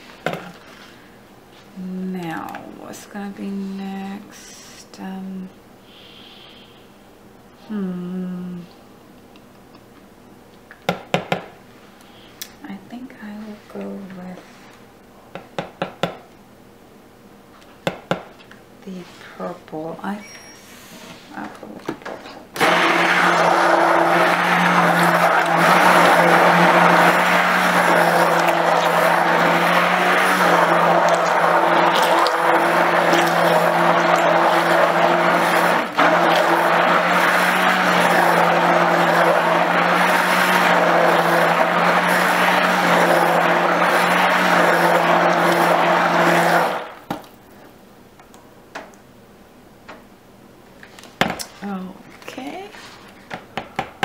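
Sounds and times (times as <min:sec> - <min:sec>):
stick blender motor hum: 0:22.6 - 0:47.0.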